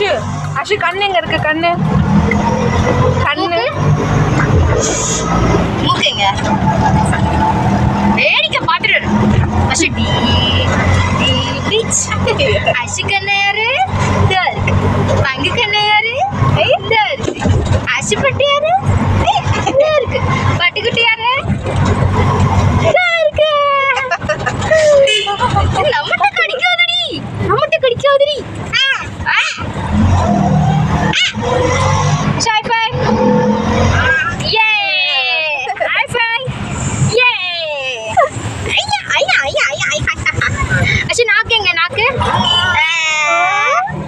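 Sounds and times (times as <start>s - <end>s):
auto-rickshaw engine running: 0.0s - 44.0s
ride rumble: 0.0s - 44.0s
people laughing: 6.2s - 7.9s, 11.4s - 12.9s, 19.2s - 20.6s, 23.7s - 26.6s, 35.1s - 36.4s, 38.0s - 41.2s.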